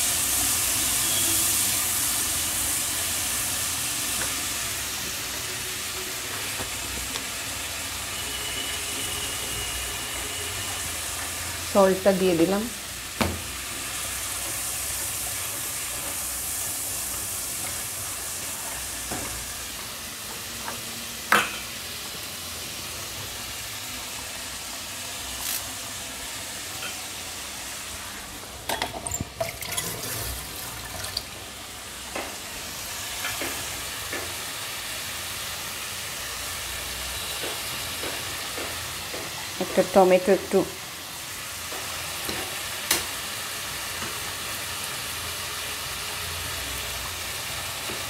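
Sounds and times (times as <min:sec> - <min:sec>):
fish sizzling in hot oil: 0:00.0 - 0:48.0
utensils clinking: 0:28.6 - 0:31.2.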